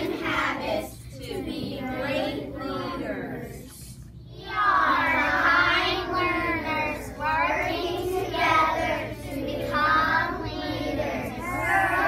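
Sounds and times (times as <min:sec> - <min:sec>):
children chanting in unison: 0:04.3 - 0:12.0.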